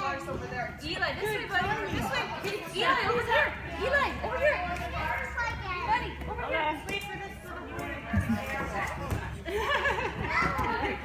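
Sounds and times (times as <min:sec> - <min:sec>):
children chattering at play: 0:00.0 - 0:11.0
toddlers and adults talking: 0:00.0 - 0:11.0.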